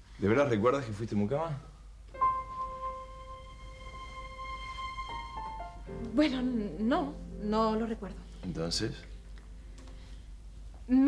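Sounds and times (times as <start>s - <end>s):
soft background music: 2.1s - 11.0s.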